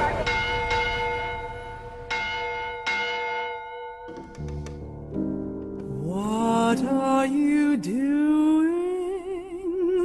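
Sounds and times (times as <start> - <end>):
church bells ringing: 0.0 - 5.0.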